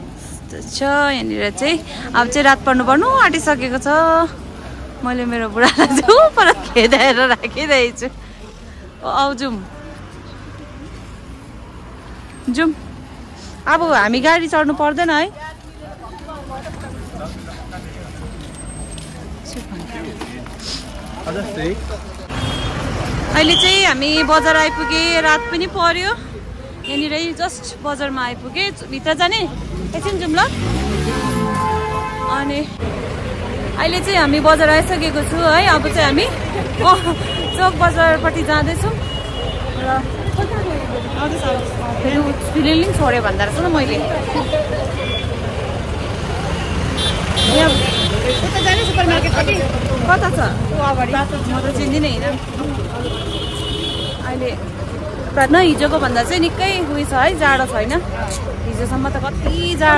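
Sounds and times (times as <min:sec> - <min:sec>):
street traffic: 0:00.0 - 0:59.9
vehicle engines rumbling: 0:00.0 - 0:59.9
voices of passers-by: 0:00.0 - 0:59.9.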